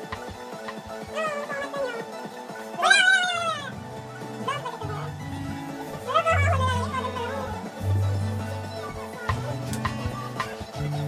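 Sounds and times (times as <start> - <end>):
music with a steady beat: 0.0 - 11.0
cat meowing: 6.0 - 7.6.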